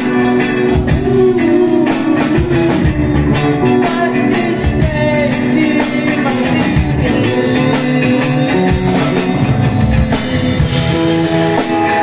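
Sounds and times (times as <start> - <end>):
bass guitar: 0.0 - 12.0
drum kit beat: 0.0 - 12.0
electric guitar: 0.0 - 12.0.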